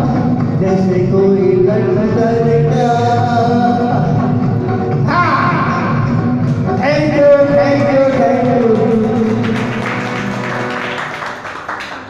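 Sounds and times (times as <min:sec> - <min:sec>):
film song backing music: 0:00.0 - 0:11.9.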